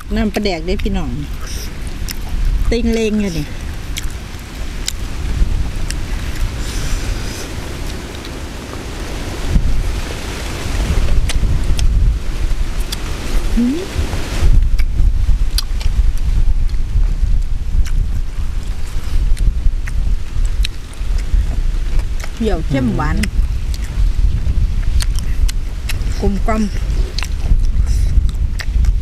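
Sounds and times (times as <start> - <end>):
wind buffeting microphone: 0.0 - 29.0
chewing clicks and smacks: 0.8 - 2.4, 3.9 - 4.2, 4.8 - 5.0, 15.5 - 16.8, 17.8 - 18.0, 19.3 - 22.4, 23.2 - 24.0, 24.8 - 26.1, 27.0 - 29.0.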